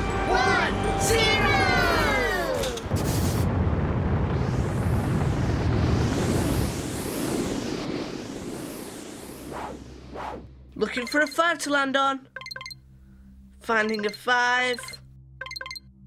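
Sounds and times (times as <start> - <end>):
loud rushing whoosh: 2.9 - 10.5.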